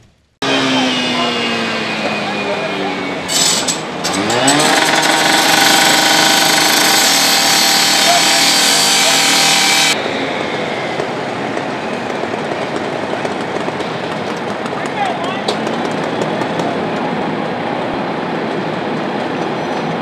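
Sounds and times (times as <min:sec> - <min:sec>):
rescue saw engine whine: 0:00.4 - 0:12.1
steady rushing noise: 0:01.2 - 0:20.0.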